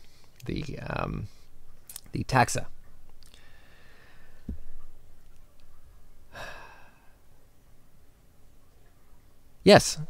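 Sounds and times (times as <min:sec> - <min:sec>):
faint room noise: 0:00.0 - 0:10.0
man sighing: 0:06.3 - 0:07.1.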